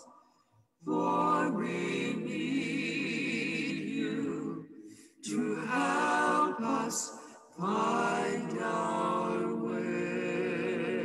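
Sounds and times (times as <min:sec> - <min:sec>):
choir singing: 0:00.8 - 0:11.0.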